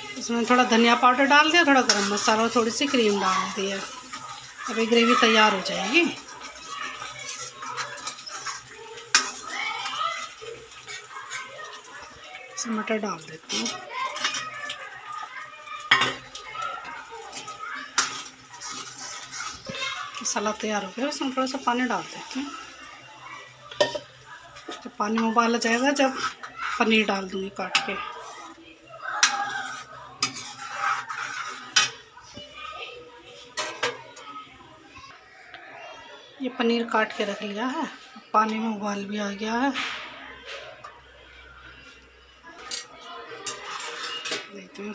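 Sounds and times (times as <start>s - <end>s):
ladle stirring and scraping pan: 0.0s - 34.6s, 37.0s - 38.7s, 39.7s - 44.9s.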